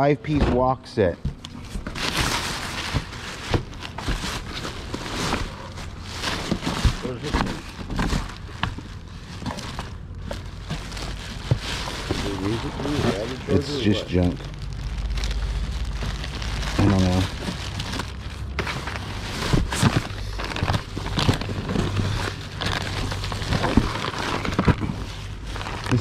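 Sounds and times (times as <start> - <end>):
plastic bag rustling and crinkling: 0.2 - 26.0.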